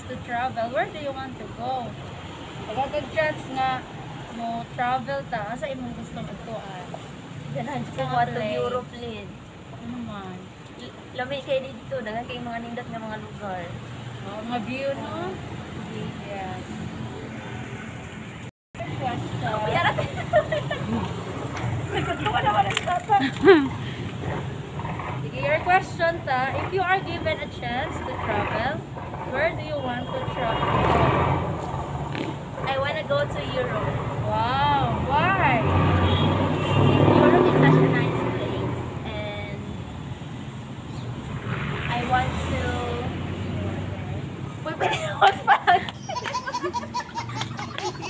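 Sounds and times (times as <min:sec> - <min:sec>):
woman laughing: 0:19.6 - 0:21.2, 0:23.1 - 0:24.0, 0:44.7 - 0:48.0
woman speaking: 0:25.2 - 0:31.1, 0:37.1 - 0:39.8, 0:41.9 - 0:45.8.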